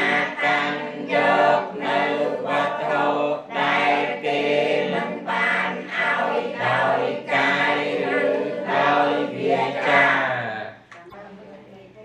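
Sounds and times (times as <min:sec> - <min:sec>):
voices singing choir-like chant: 0:00.0 - 0:10.8.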